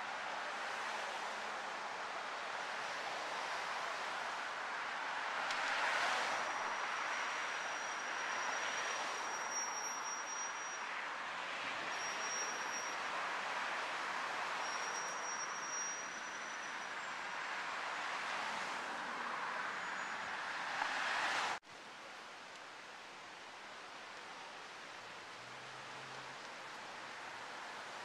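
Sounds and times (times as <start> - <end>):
street traffic noise: 0.0 - 28.0.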